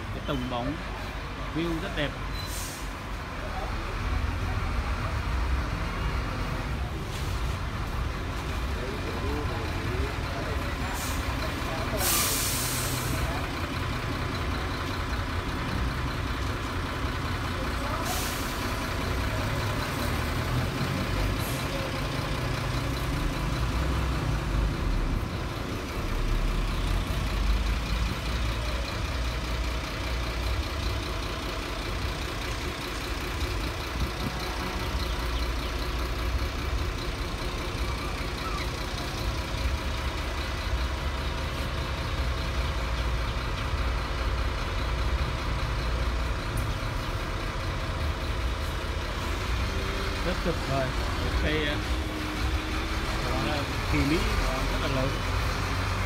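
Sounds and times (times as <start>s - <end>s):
outdoor background rumble: 0.0s - 56.0s
short hiss: 12.0s - 13.1s.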